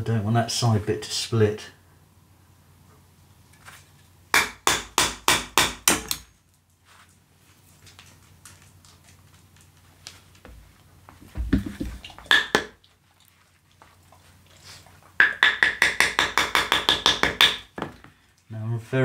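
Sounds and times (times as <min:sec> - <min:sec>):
dull thump: 0:11.2 - 0:12.0.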